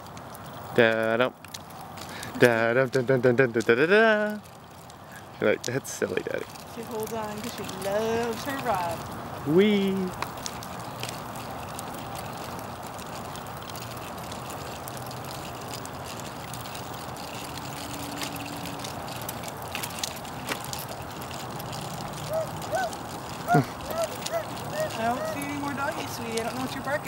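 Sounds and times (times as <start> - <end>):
stroller wheels rolling on pavement: 0.0 - 27.0
dog barking: 22.2 - 25.4.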